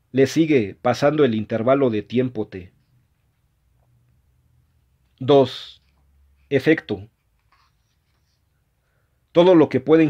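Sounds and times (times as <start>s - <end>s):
man speaking: 0.1s - 2.8s, 5.2s - 5.9s, 6.5s - 7.2s, 9.3s - 10.0s.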